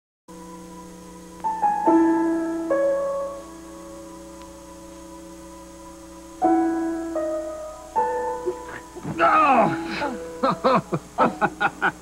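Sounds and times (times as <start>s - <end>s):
faint steady hum: 0.3s - 12.0s
soft piano music: 0.3s - 12.0s.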